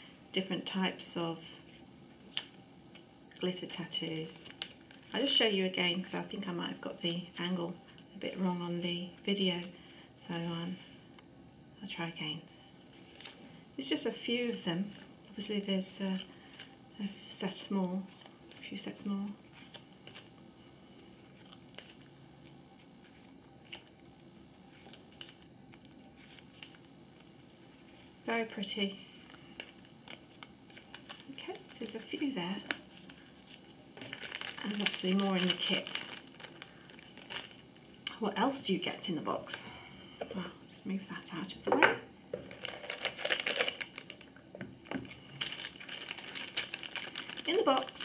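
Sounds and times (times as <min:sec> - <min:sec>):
plastic bag crinkling: 0:21.0 - 0:38.1, 0:42.3 - 0:48.0
card sheets ticking and rustling: 0:29.2 - 0:37.6, 0:42.4 - 0:44.3, 0:45.0 - 0:48.0.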